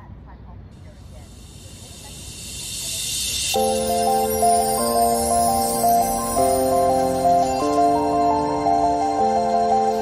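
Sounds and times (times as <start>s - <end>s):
faint chirping: 0.8s - 4.4s
noise riser hiss: 0.8s - 9.9s
music: 1.4s - 10.0s.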